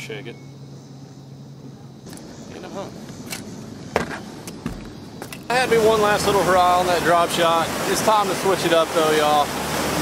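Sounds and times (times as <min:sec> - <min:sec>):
dull thump: 0:03.9 - 0:05.5.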